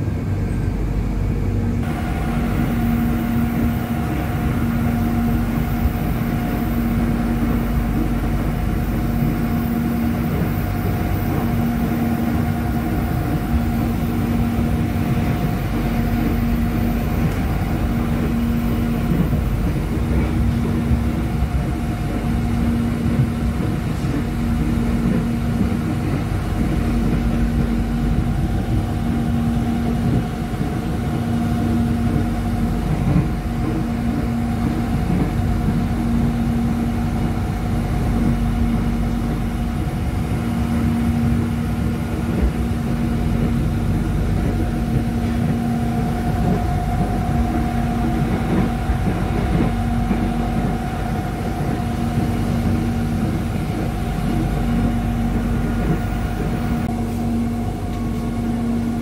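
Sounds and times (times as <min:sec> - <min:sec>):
constant hum: 0:00.0 - 0:59.0
train carriage running rumble: 0:00.0 - 0:59.0.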